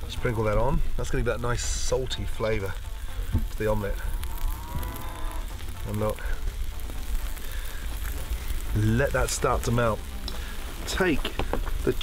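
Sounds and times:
omelette frying in pan: 0:00.0 - 0:12.0
steady low rumble: 0:00.0 - 0:12.0.

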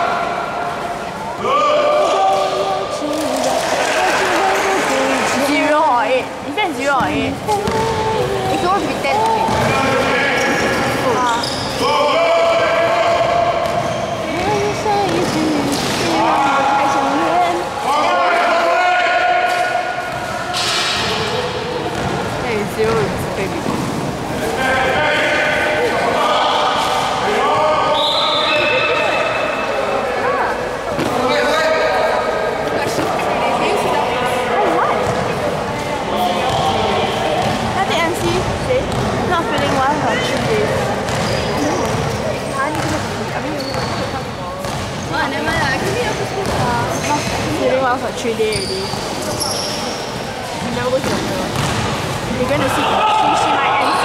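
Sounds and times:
people shouting and chattering: 0:00.0 - 0:54.0
basketball bouncing on hard court: 0:13.6 - 0:15.9, 0:21.9 - 0:23.9, 0:37.4 - 0:43.0, 0:50.6 - 0:51.9.

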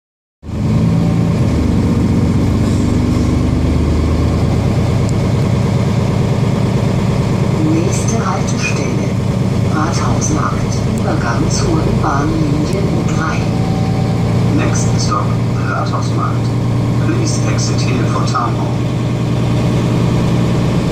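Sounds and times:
bus diesel engine running: 0:00.4 - 0:20.9
voices: 0:07.6 - 0:18.9.

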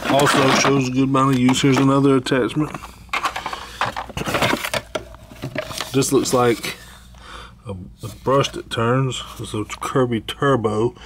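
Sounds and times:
plastic attachments clicking and rattling: 0:00.0 - 0:02.0, 0:02.7 - 0:06.2.

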